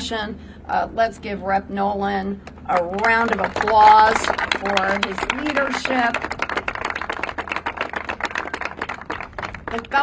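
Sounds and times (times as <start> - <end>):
small crowd applauding: 2.7 - 10.0.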